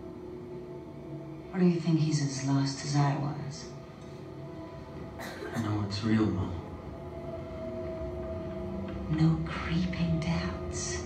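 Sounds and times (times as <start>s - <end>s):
low sustained orchestral chord: 0.0s - 11.0s.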